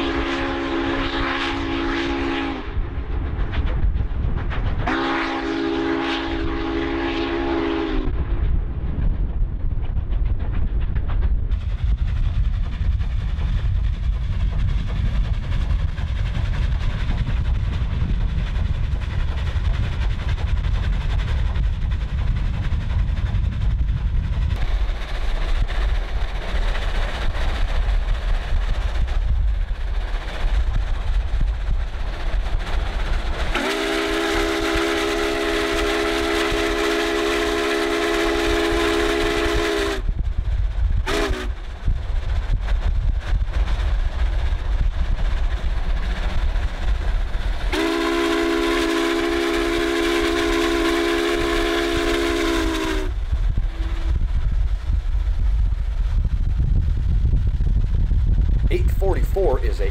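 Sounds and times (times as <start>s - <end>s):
steam whistle chord blasts: 0.0s - 2.8s, 4.9s - 8.1s, 33.5s - 40.1s, 47.7s - 53.2s
steady low rumble: 0.0s - 59.9s.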